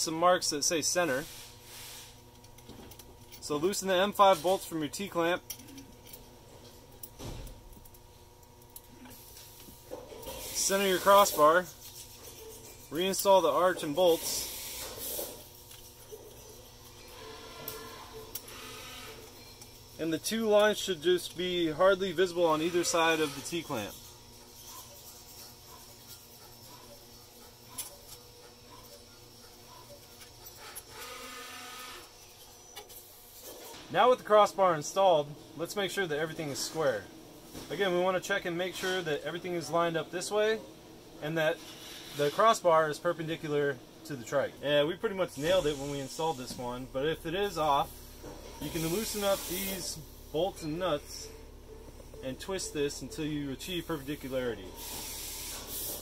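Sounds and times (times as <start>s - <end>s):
low room hum: 0.0s - 56.0s
small metal parts clicking: 5.5s - 6.3s.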